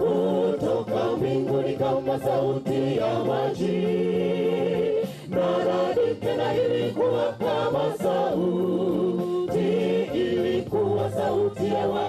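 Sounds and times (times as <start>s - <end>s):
group singing in harmony: 0.0s - 12.0s.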